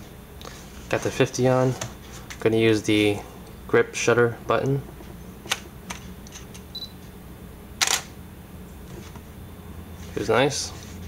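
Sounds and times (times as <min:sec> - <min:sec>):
camera shutter double snap: 0:07.8 - 0:08.1.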